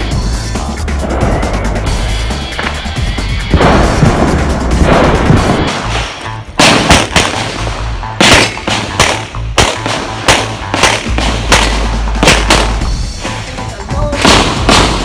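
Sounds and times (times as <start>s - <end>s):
background music: 0.0s - 15.0s
pistol shots: 3.5s - 12.9s, 14.2s - 15.0s.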